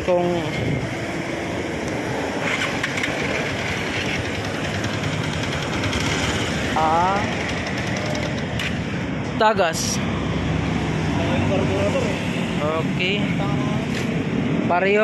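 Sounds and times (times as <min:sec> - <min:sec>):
motorcycle engine idling: 0:02.4 - 0:09.0.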